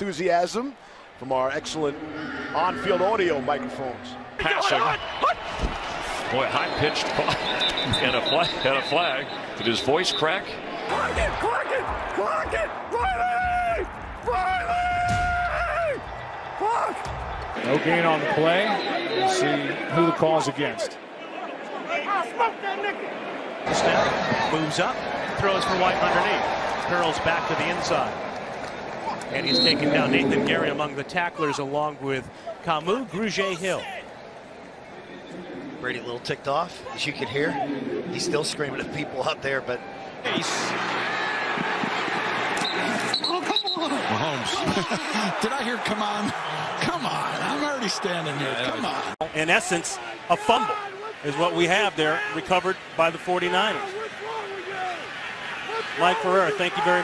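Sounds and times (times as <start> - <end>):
stadium crowd din: 0.0 - 57.0
men shouting: 42.9 - 52.4, 53.5 - 57.0.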